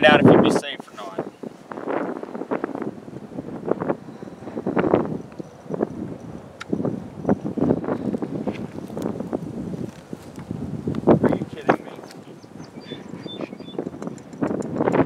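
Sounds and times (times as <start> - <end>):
gusty wind buffeting microphone: 0.0 - 15.0.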